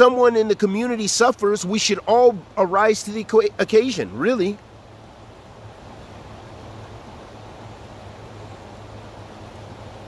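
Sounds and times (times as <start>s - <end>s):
river flowing over rocks: 0.0s - 10.0s.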